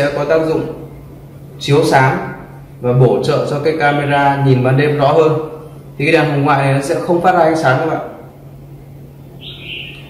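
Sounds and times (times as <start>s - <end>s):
bird chirp: 9.2s - 10.0s.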